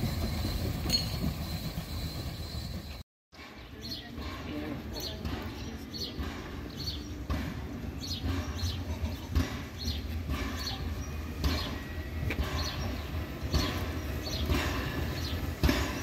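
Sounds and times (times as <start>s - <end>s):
steam locomotive chuffing: 0.0s - 16.0s.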